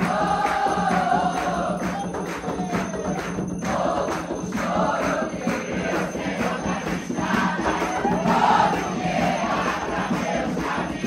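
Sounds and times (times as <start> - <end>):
congregation singing: 0.0 - 11.0
hands clapping in rhythm: 0.0 - 11.0.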